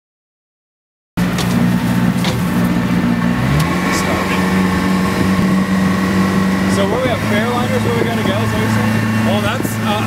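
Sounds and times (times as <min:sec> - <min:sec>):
outboard motor idling: 0:01.2 - 0:10.0.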